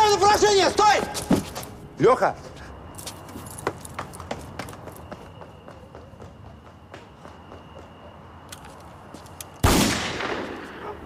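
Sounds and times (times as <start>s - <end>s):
running footsteps on pavement: 0.5s - 9.6s.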